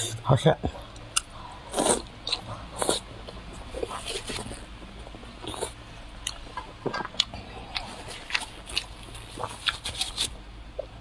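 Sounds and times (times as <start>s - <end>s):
person biting and chewing food: 1.0s - 11.0s.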